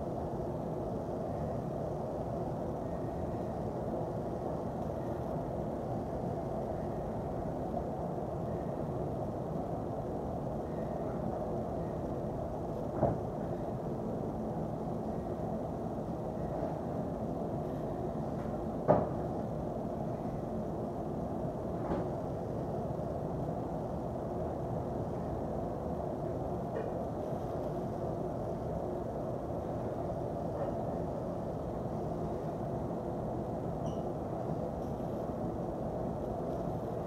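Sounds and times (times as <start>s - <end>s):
low rumbling background noise: 0.0s - 37.0s.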